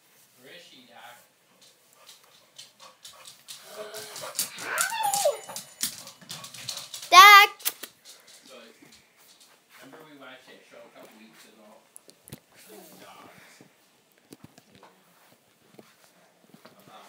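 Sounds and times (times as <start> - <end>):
high wobbling cry: 3.8 - 5.6.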